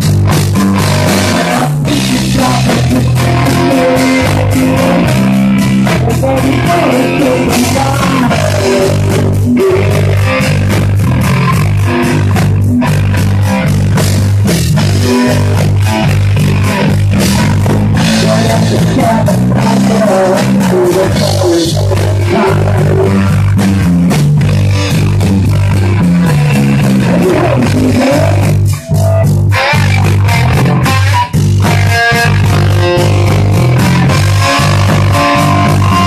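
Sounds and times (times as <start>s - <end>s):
live rock band playing: 0.0s - 36.0s.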